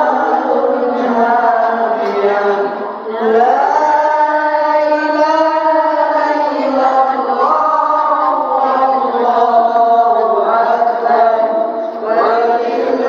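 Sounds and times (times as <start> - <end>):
woman chanting melodically: 0.0 - 13.0.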